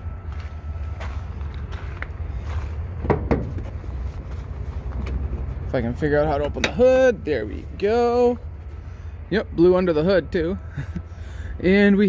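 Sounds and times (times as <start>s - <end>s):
steady low rumble: 0.0s - 12.0s
footsteps on gravel: 0.1s - 5.6s.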